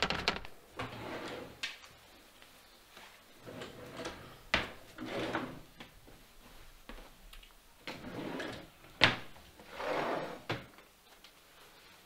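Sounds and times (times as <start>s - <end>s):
sharp wooden knocks: 0.0s - 0.5s.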